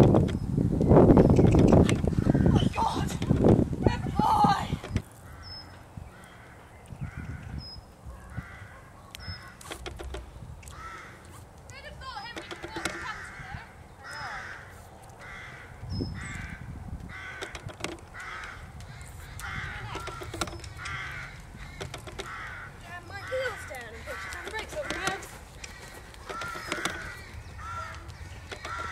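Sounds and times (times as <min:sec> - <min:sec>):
bird chirping: 0:00.0 - 0:03.5, 0:04.7 - 0:28.9.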